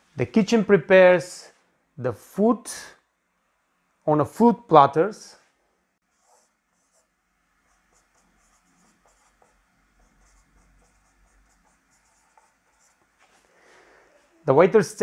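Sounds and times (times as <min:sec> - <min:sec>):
marker pen on whiteboard: 0:06.0 - 0:13.5.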